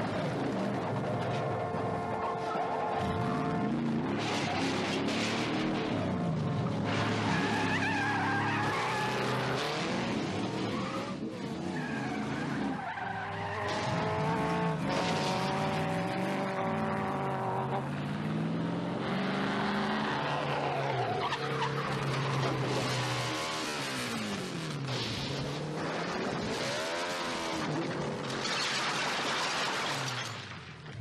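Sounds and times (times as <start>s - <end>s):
tires skidding and squealing: 0.0s - 30.4s
car engine revving hard: 13.6s - 21.0s.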